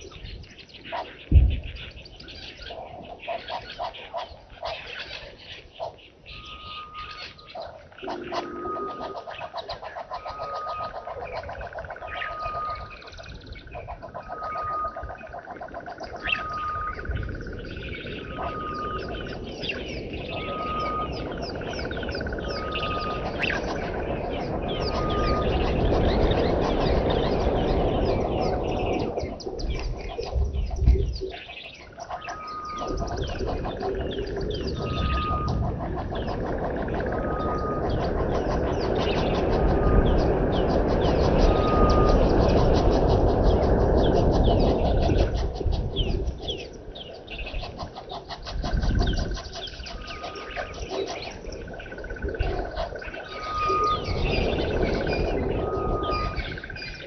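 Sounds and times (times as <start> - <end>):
birds chirping: 0.0 - 57.0
bird piping note: 6.3 - 29.9, 32.0 - 44.2, 49.0 - 57.0.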